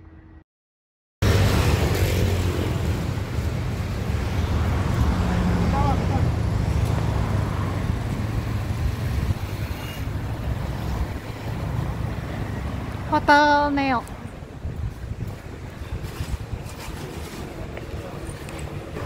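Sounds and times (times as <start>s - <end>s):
road traffic rumble: 1.2s - 19.0s.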